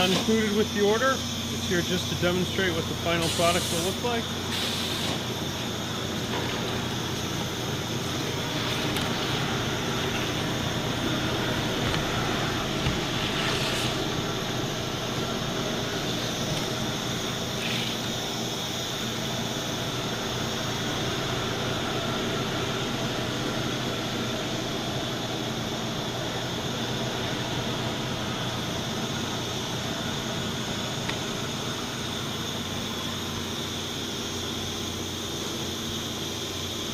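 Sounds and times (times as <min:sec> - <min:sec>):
packaging machine rushing and whining: 0:00.0 - 0:19.2
low machine hum: 0:00.0 - 0:36.9.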